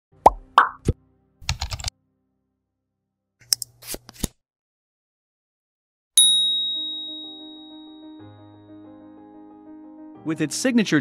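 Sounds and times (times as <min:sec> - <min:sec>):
keyboard typing clicks: 0:01.4 - 0:01.9.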